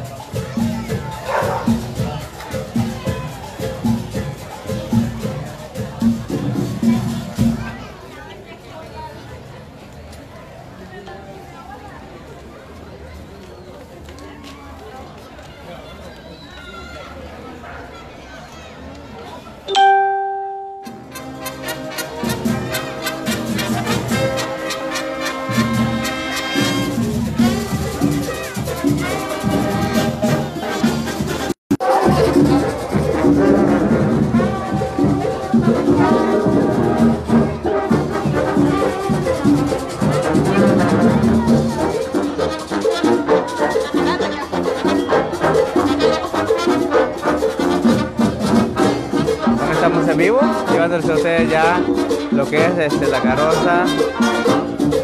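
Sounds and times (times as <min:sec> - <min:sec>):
brass band playing: 0:19.8 - 0:55.0.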